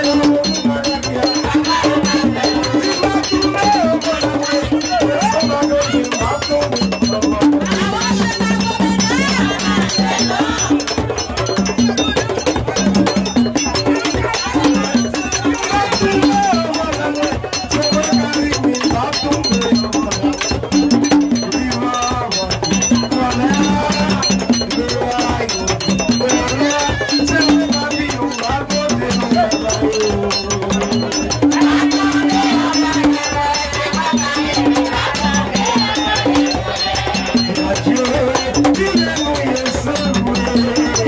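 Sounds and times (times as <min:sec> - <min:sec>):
percussion with rattles: 0:00.0 - 0:41.0
voices singing: 0:00.0 - 0:41.0.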